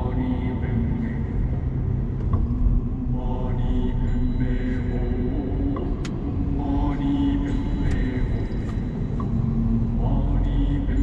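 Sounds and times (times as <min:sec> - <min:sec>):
road rumble inside car: 0:00.0 - 0:11.0
song vocals: 0:00.0 - 0:11.0.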